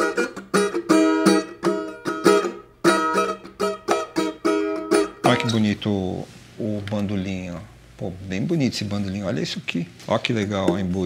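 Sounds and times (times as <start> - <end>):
cavaquinho strummed chords: 0.0 - 5.8.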